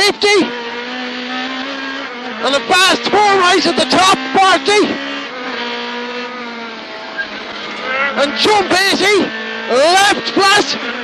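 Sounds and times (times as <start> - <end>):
car engine under power: 0.0 - 11.0.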